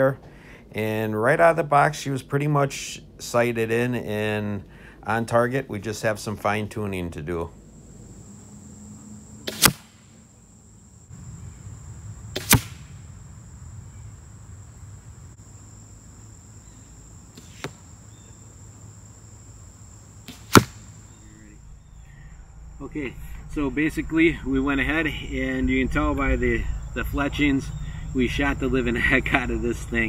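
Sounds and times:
crossbow bolt cracks: 0:09.5 - 0:10.0, 0:12.4 - 0:12.8, 0:20.3 - 0:20.8.

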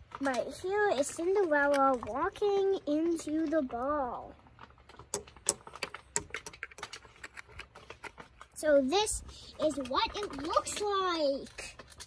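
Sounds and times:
toy figure clicking and tapping: 0:05.0 - 0:07.7.

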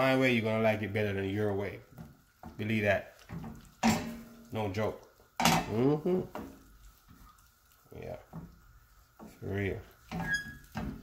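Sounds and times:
faint sizzle: 0:00.0 - 0:11.0
wooden spoon scraping pan: 0:06.2 - 0:11.0.

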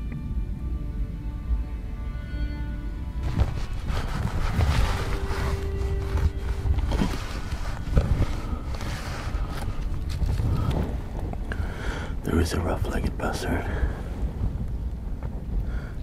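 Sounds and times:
soft background music: 0:00.0 - 0:16.0
wind noise on microphone: 0:00.0 - 0:16.0
cloth cover rustling and knocking: 0:03.2 - 0:11.6.

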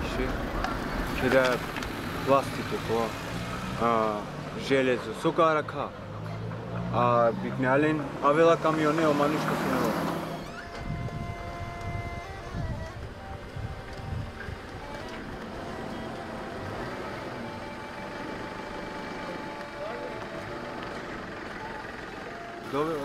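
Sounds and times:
cargo tricycle rolling over asphalt: 0:00.0 - 0:04.2, 0:08.7 - 0:23.0.

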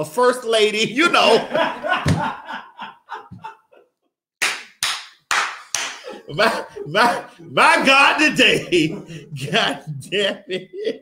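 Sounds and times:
woman laughing: 0:01.2 - 0:03.8, 0:06.0 - 0:11.0
loud sharp hand claps: 0:04.4 - 0:06.1.

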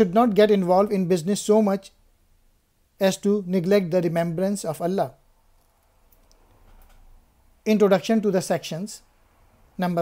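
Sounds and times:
person speaking: 0:00.0 - 0:02.0, 0:03.0 - 0:05.2.

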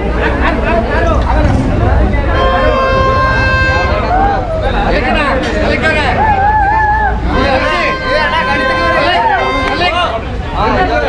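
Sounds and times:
crowd talking and calling out: 0:00.0 - 0:11.0
low rumble: 0:01.2 - 0:04.8.

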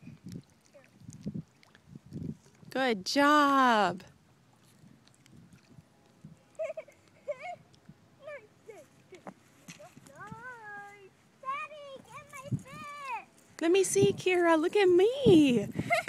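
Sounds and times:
children talking and calling out: 0:09.8 - 0:13.4.

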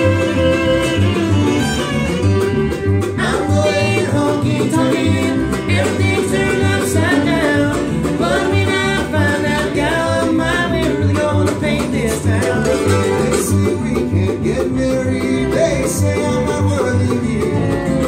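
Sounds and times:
bluegrass band playing: 0:00.0 - 0:18.0
upright bass plucking: 0:00.0 - 0:18.0
man singing: 0:03.2 - 0:18.0.

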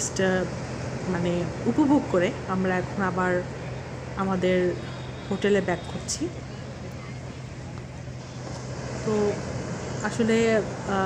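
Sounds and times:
distant sea surf: 0:00.0 - 0:11.0
low hum: 0:00.0 - 0:11.0.

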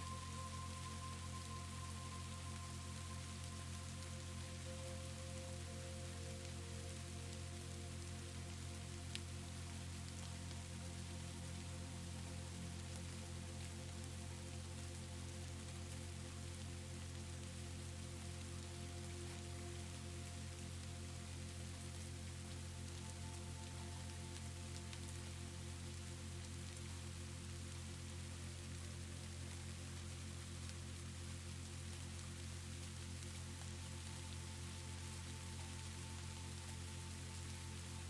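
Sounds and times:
soft background music: 0:00.0 - 0:38.0
steady rain: 0:00.0 - 0:38.0.

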